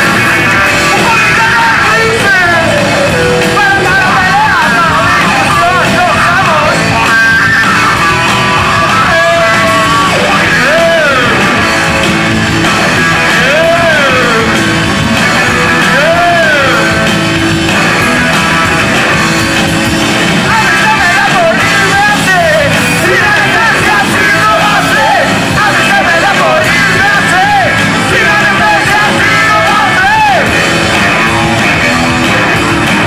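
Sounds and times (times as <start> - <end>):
rock band playing loudly: 0.0 - 33.0.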